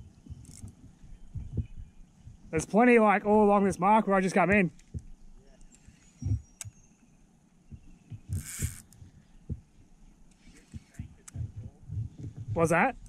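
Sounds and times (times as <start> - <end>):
fishing reel reeling in: 8.3 - 9.0.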